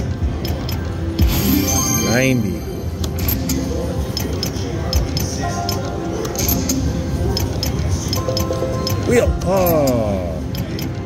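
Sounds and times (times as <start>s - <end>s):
casino background chatter: 0.0s - 11.0s
slot machine game music: 1.2s - 4.2s, 6.3s - 10.5s
chiming clicks: 1.4s - 3.6s.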